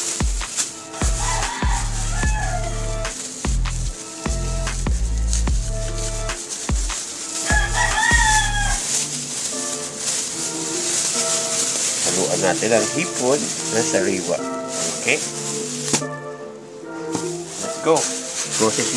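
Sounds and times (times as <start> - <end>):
background music with steady beat: 0.0 - 18.9
rooster crowing: 0.8 - 4.1, 7.4 - 9.1.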